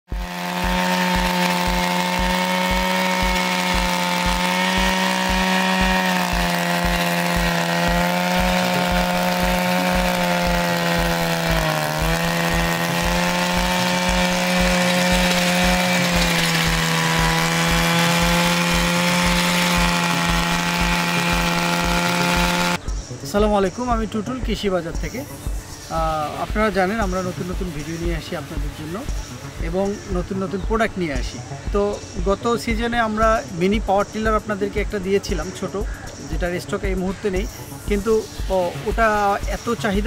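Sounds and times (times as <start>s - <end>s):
tines churning dry soil: 0.0s - 22.8s
two-stroke tiller engine running: 0.0s - 22.8s.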